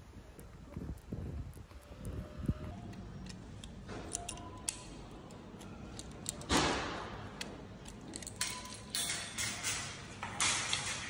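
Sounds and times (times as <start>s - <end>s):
token clicking into coin lock: 2.9s - 6.6s.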